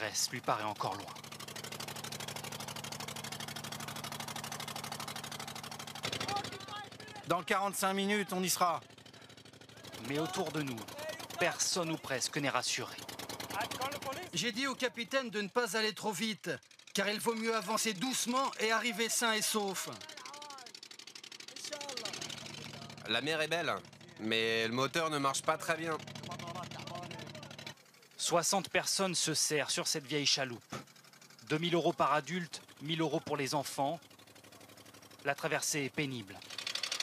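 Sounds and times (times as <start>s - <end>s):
men talking: 0.0s - 1.2s, 6.0s - 20.8s, 21.5s - 30.8s, 31.5s - 34.0s, 35.3s - 36.4s
boat diesel engine running: 0.0s - 37.0s.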